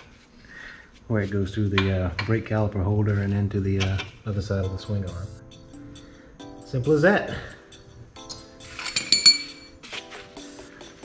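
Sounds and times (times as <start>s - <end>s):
background music: 4.4s - 11.0s
metal spacer clinking: 8.7s - 9.7s.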